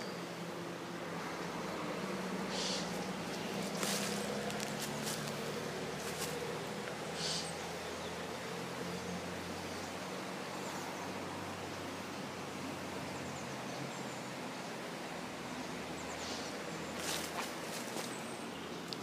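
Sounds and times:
outdoor ambient hiss: 0:00.0 - 0:19.0
short rustle: 0:02.6 - 0:05.4, 0:17.0 - 0:18.2.

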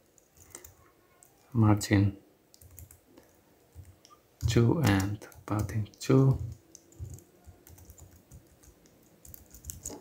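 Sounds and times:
faint computer keyboard clicks: 0:02.5 - 0:10.0.

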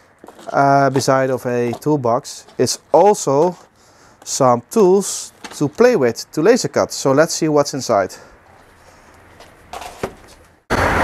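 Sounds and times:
cardboard rustling: 0:00.0 - 0:03.8, 0:05.3 - 0:05.8, 0:08.5 - 0:10.6
loud handling noise: 0:05.3 - 0:05.9, 0:09.3 - 0:11.0.

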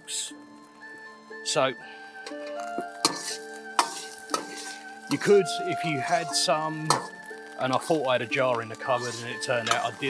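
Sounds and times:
food sizzling in wok: 0:00.4 - 0:10.0
spatula clinking against pan: 0:02.2 - 0:04.8, 0:06.9 - 0:07.1, 0:09.6 - 0:10.0
spatula scraping rice in wok: 0:02.9 - 0:05.3.

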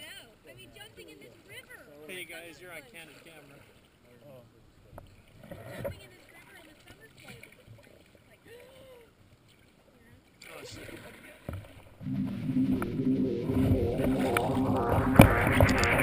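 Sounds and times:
paddles dipping in water: 0:02.9 - 0:04.1, 0:05.0 - 0:12.0.

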